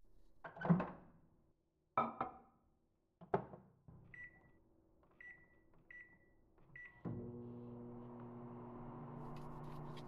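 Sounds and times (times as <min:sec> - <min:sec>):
microwave oven humming: 0:07.1 - 0:09.6.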